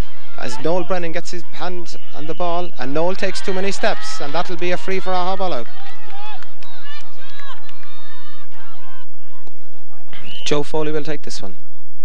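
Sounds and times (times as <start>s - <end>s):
crowd shouting: 0.0s - 10.4s.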